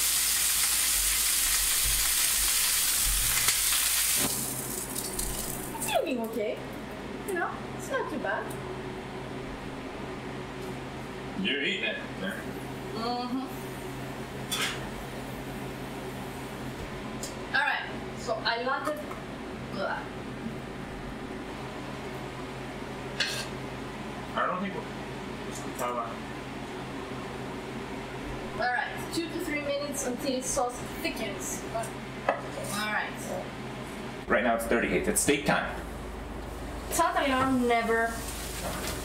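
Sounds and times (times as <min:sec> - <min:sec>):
range-hood fan humming: 0:00.0 - 0:39.0.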